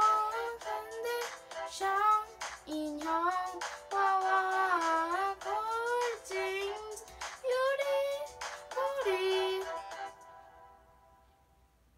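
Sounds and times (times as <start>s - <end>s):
high voice singing: 0.0s - 10.1s
music: 0.0s - 11.8s.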